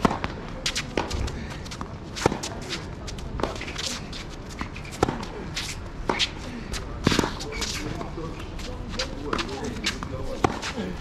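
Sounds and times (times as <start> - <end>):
footsteps scuffing on court: 0.5 - 11.0.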